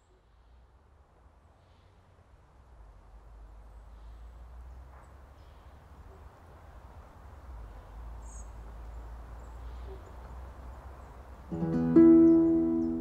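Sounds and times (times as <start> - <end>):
soft hiss: 0.0 - 13.0.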